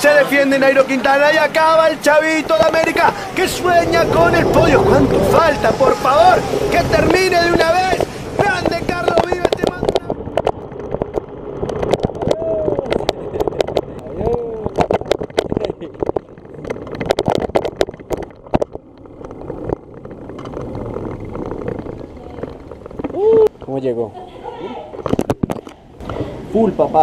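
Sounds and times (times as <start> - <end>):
wind rushing on microphone: 1.7 - 23.6
bike knocking and rattling: 2.3 - 24.0.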